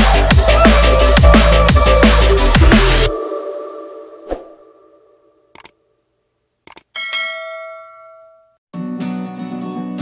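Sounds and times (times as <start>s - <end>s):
quick mouse clicks: 5.6s - 5.8s, 6.7s - 6.9s
bell ding: 7.0s - 8.6s.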